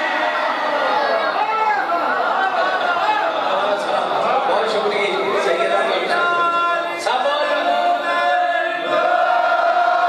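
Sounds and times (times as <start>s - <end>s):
crowd chatter: 0.0s - 10.0s
man speaking into a microphone: 1.4s - 8.9s.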